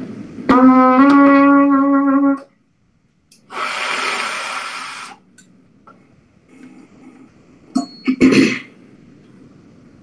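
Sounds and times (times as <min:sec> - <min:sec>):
rush of breath: 0:03.5 - 0:05.2.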